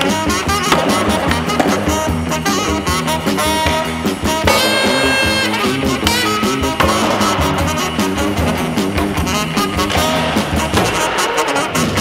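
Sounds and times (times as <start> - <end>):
skateboard wheels rolling: 0.0 - 12.0
swing music with brass: 0.0 - 12.0
skateboard hitting concrete: 0.6 - 2.1, 6.8 - 7.8, 9.8 - 11.5.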